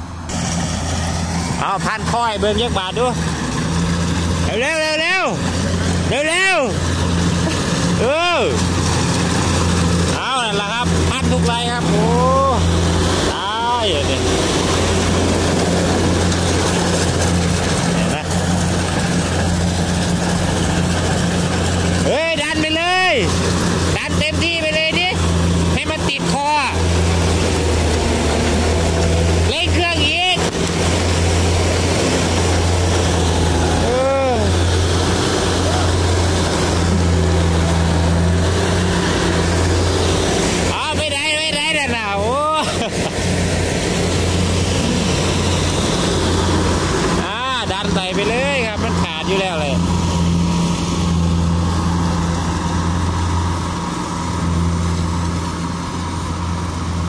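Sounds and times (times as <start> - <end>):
combine harvester engine drone: 0.0 - 57.0
machinery clatter: 0.1 - 57.0.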